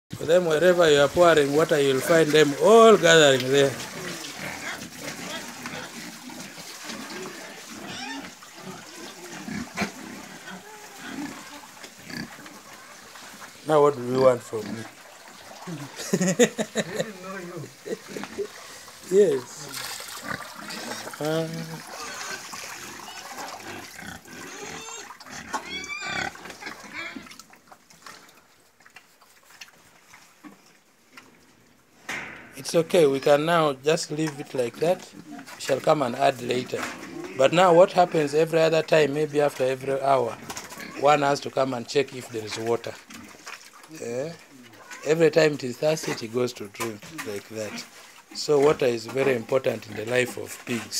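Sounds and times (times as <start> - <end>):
water splashing from watering can: 0.1 - 30.7, 34.0 - 50.9
pigs grunting: 0.2 - 28.4, 34.1 - 50.9.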